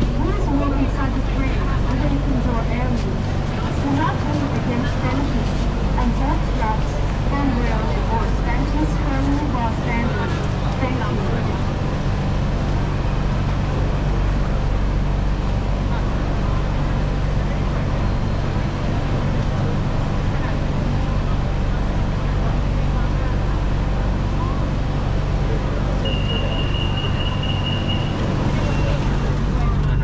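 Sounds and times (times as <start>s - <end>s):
train car humming: 0.0s - 30.0s
faint passing voices: 15.3s - 30.0s.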